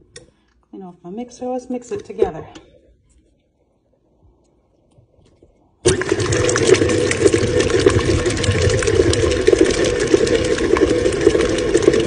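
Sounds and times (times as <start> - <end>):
stand mixer motor running: 5.9 - 12.0.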